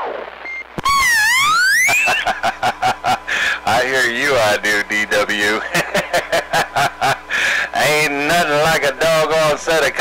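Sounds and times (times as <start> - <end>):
rapid pulsing beeps: 0.4 - 2.3.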